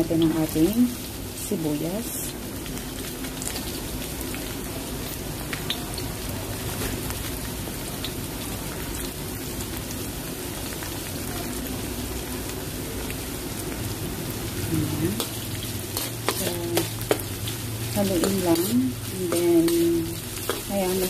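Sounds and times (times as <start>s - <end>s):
garlic and onion sizzling in oil: 0.0s - 21.0s.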